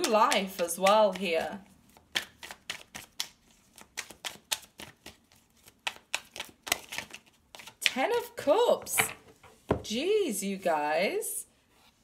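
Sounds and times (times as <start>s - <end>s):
cards being shuffled: 0.0s - 8.0s.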